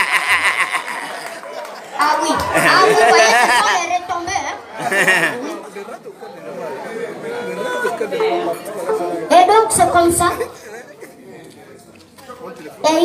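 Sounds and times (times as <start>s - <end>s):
audience chatter: 0.0s - 13.0s.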